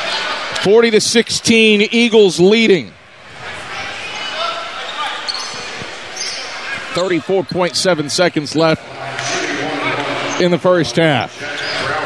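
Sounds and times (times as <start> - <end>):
sneaker squeaks on hardwood: 4.8 - 7.0.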